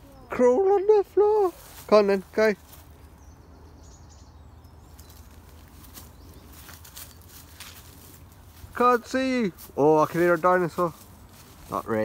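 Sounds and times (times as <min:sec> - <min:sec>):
rustling of leaves and twigs: 0:00.0 - 0:12.0.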